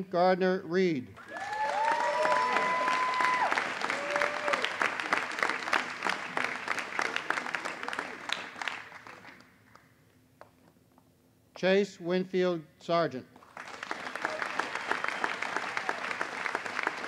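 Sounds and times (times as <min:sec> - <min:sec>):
crowd calling out: 0:01.2 - 0:04.7
audience applause: 0:01.2 - 0:09.8, 0:13.4 - 0:17.0.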